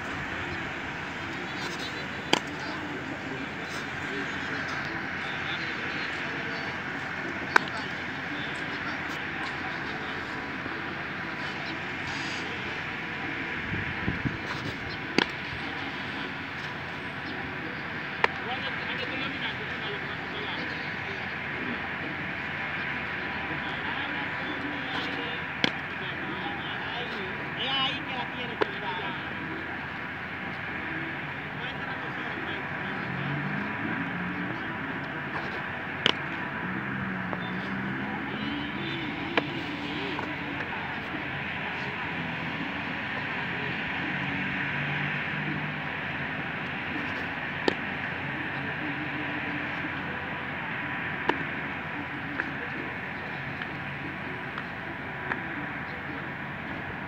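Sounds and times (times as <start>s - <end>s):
faint distant voices: 0.0s - 57.0s.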